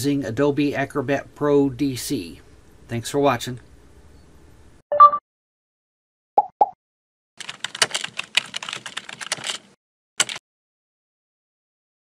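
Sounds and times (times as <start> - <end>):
keyboard typing clicks: 10.2 - 10.4.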